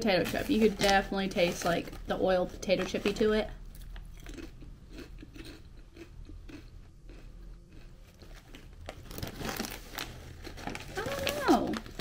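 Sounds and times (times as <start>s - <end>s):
foil bag crinkling: 0.0s - 3.3s, 8.2s - 12.0s
potato chips crunching: 0.1s - 12.0s.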